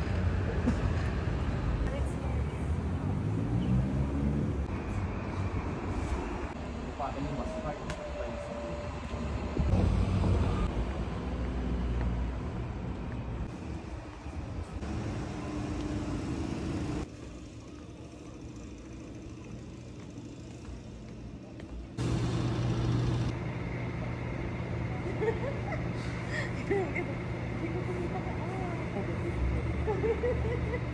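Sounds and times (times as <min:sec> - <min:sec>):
street traffic: 0:00.0 - 0:30.9
vehicle passing: 0:01.9 - 0:05.4.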